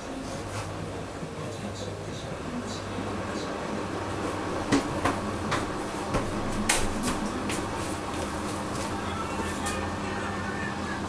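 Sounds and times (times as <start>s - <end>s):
washing machine motor hum: 0.0s - 11.0s
laundry drum clicks and knocks: 4.6s - 7.6s.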